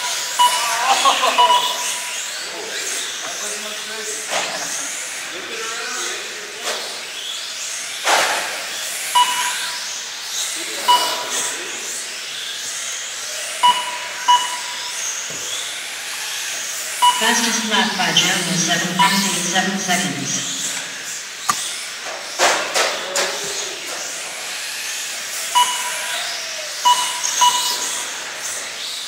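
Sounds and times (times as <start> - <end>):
short electronic beeps: 0.0 - 2.2, 9.2 - 9.8, 10.9 - 11.4, 13.6 - 15.0, 17.0 - 21.0, 25.6 - 26.2, 26.8 - 28.0
electric toy car motors whining: 0.0 - 17.1, 20.5 - 29.0.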